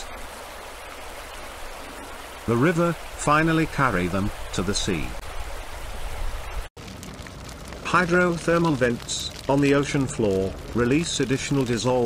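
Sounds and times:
running water rushing: 0.0s - 12.0s.

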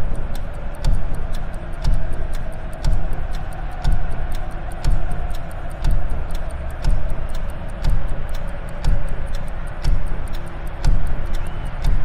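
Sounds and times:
sharp clock ticks: 0.0s - 12.0s.

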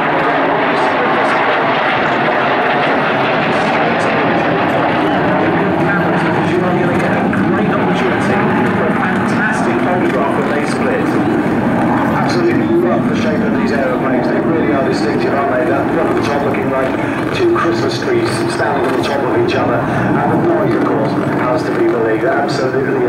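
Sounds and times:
jet engines flyby: 0.0s - 23.0s.

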